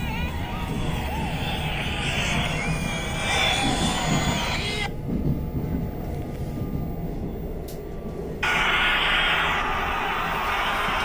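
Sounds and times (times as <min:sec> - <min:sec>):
faint squealing tones: 0:00.0 - 0:05.8
subway train rumble: 0:00.0 - 0:11.0
train hiss: 0:08.4 - 0:11.0.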